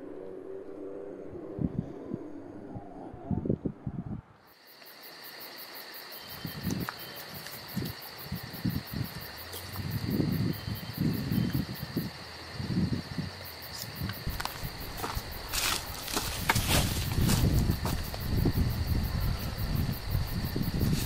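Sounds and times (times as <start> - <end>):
low thumps and rumbles: 14.0 - 20.8.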